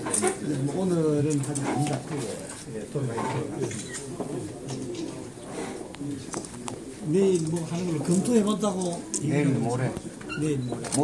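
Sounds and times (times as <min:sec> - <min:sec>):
men's voices murmuring: 0:00.0 - 0:11.0.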